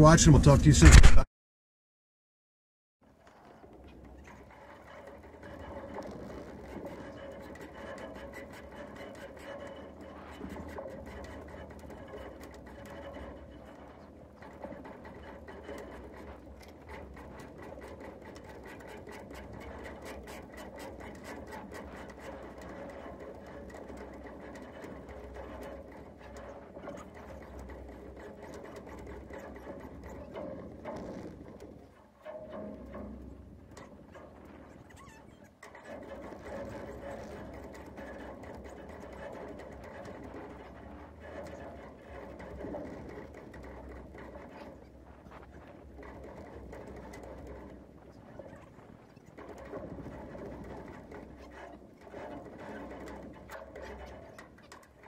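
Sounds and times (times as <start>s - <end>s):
winch clicking: 3.2s - 55.0s.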